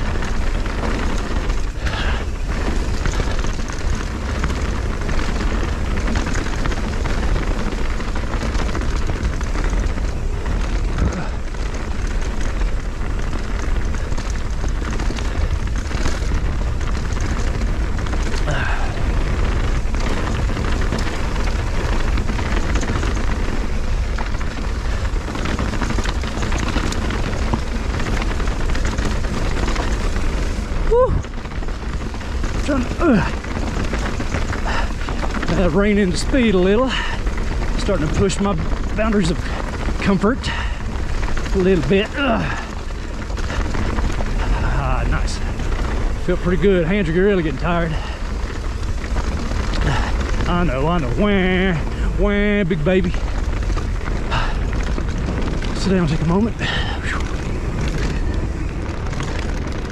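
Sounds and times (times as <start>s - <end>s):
bike knocks and rattles: 0.0s - 59.9s
tyres on dirt and loose rock: 0.0s - 59.9s
wind buffeting microphone: 0.0s - 59.9s.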